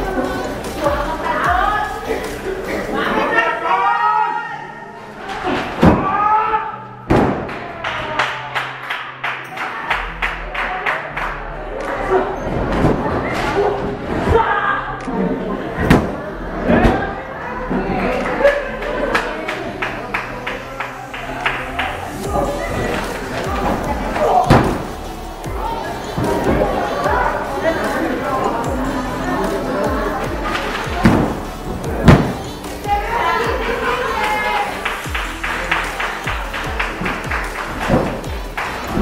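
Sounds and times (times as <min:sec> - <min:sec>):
voices: 0:00.0 - 0:07.0, 0:10.6 - 0:39.0
loud slam in wrestling ring: 0:07.1 - 0:07.5.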